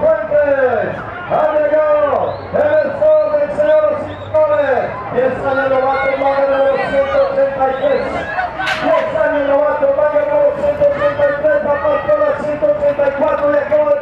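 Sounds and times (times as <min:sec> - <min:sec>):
man commentating: 0:00.0 - 0:14.0.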